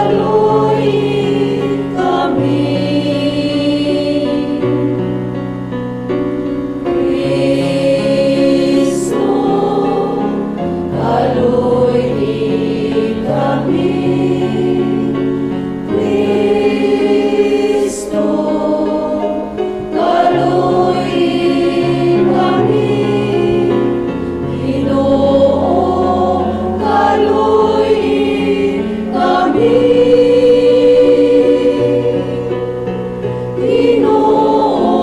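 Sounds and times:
choir singing a slow hymn: 0.0s - 35.0s.

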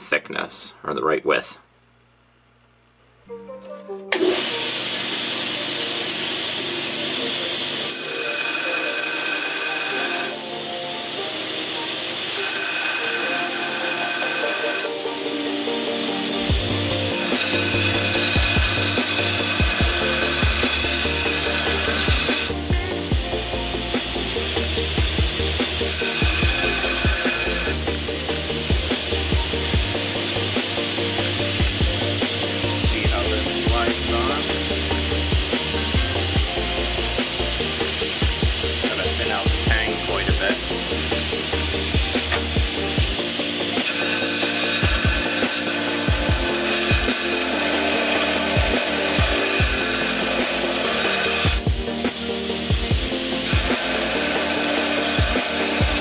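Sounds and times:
background music: 3.2s - 56.0s
belt grinder grinding steel blade: 4.2s - 10.5s, 11.6s - 15.0s, 16.5s - 56.0s.

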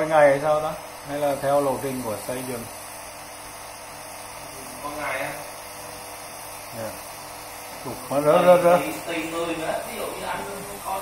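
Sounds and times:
small electric motor running: 0.0s - 11.0s.

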